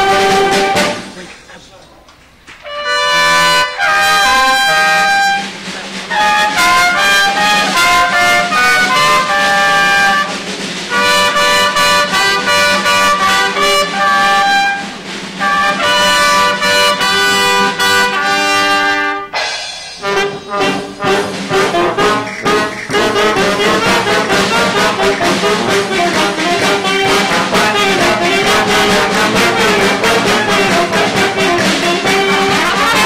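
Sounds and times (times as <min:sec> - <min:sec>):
brass band playing: 0:00.0 - 0:01.3, 0:02.6 - 0:33.0.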